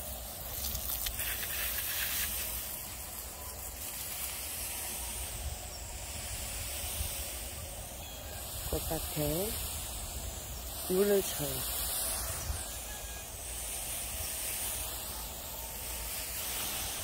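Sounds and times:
hose spraying water mist: 0.0s - 17.0s.

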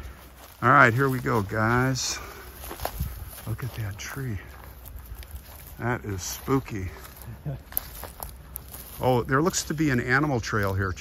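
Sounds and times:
footsteps through grass: 0.0s - 11.0s
twigs crackling: 0.0s - 11.0s.

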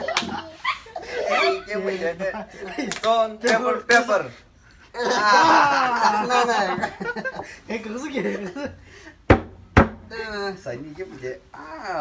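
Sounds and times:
young men laughing and chattering: 0.0s - 9.3s
plastic bottle smacking head: 9.3s - 10.1s.

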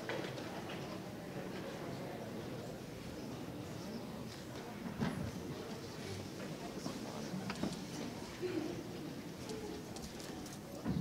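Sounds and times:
small clicks and shuffles: 9.4s - 10.9s.

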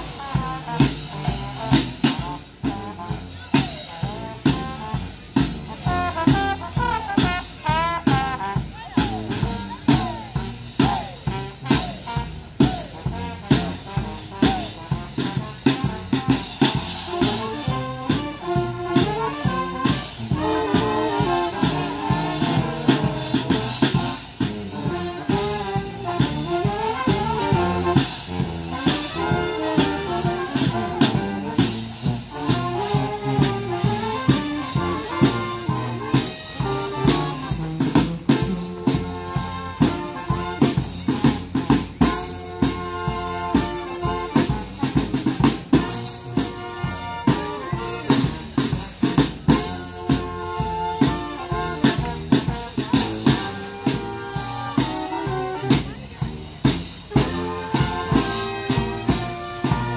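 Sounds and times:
drums steady beat: 0.0s - 59.9s
trumpets and horns: 0.0s - 59.9s.

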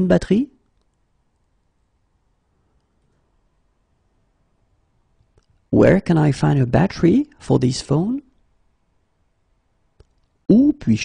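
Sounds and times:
person speaking: 0.0s - 1.0s, 5.3s - 8.5s, 10.1s - 11.0s.

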